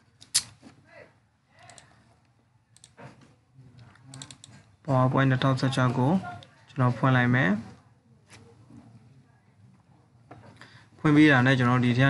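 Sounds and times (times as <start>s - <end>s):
computer key clicks: 2.8s - 3.0s.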